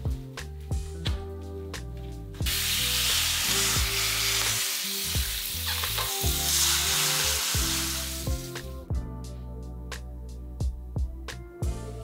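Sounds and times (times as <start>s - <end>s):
soft background music: 0.0s - 12.0s
shower spraying water: 2.4s - 8.7s.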